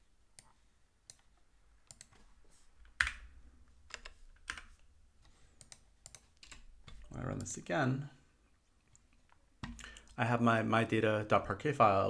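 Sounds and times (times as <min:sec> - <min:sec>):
computer keyboard keystrokes: 0:01.9 - 0:02.2.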